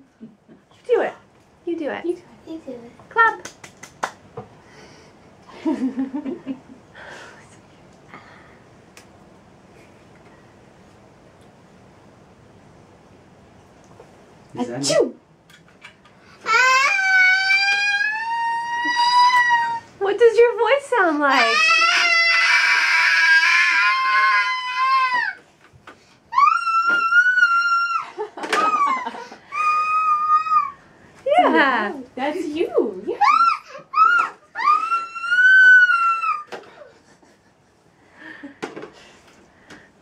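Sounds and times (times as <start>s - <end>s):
child holding long high aaah: 16.4s - 19.9s, 21.4s - 25.4s, 26.3s - 30.8s, 33.2s - 36.9s.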